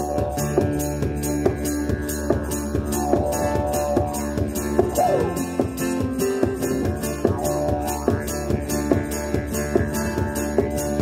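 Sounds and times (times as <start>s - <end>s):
didgeridoo drone: 0.0s - 11.0s
jingling percussive beat: 0.0s - 11.0s.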